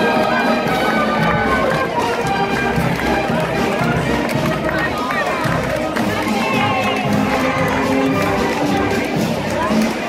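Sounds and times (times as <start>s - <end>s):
crowd chatter: 0.0s - 10.0s
wind band playing a march: 0.0s - 10.0s.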